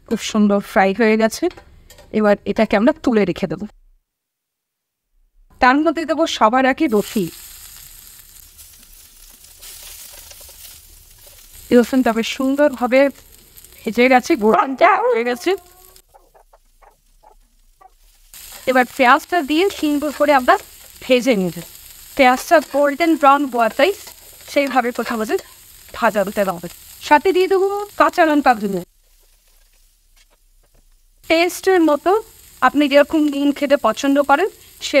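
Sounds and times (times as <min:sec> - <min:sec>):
food sizzling in hot oil: 0:06.8 - 0:35.0
stirring in a pan: 0:06.9 - 0:14.5, 0:15.3 - 0:28.1, 0:28.8 - 0:31.4
person speaking: 0:13.8 - 0:17.4.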